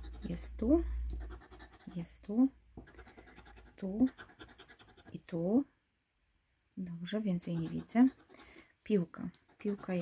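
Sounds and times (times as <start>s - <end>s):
metal tool scraping scratch card: 9.5s - 10.0s.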